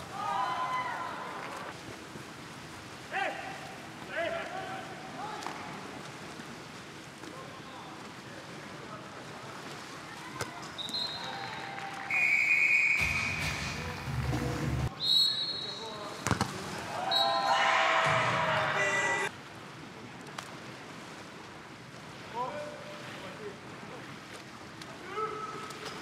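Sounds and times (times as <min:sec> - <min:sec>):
arena noise: 0:00.0 - 0:01.9, 0:03.0 - 0:19.3
referee whistle blasts: 0:10.8 - 0:11.3, 0:12.1 - 0:13.8, 0:14.9 - 0:16.0, 0:17.0 - 0:18.2
shouting voices: 0:16.9 - 0:19.3.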